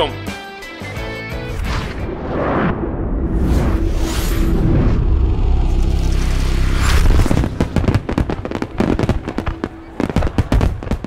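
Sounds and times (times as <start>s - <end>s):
fireworks bangs and crackles: 7.0s - 11.0s.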